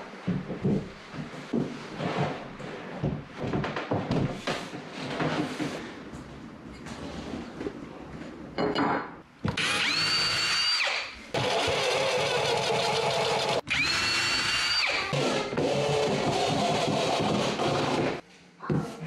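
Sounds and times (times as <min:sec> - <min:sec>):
cordless drill driving screws: 0:09.6 - 0:15.1.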